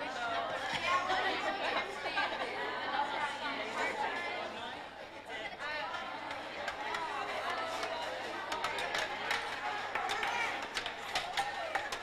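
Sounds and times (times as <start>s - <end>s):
chatter of many voices: 0.0s - 12.0s.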